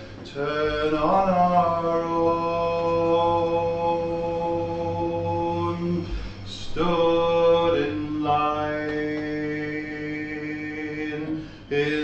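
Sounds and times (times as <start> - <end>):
man singing a long note: 0.0 - 12.0.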